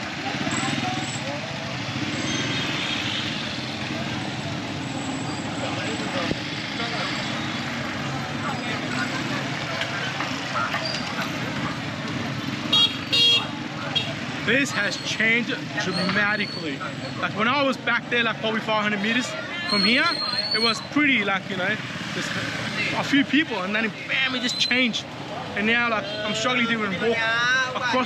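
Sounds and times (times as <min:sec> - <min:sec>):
scooter engines droning: 0:00.0 - 0:28.0
horn beeps: 0:02.0 - 0:03.6, 0:12.6 - 0:15.1, 0:19.5 - 0:20.9.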